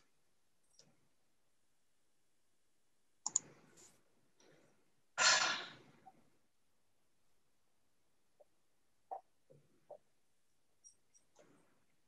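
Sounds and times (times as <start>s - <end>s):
computer mouse clicks: 3.2s - 3.5s.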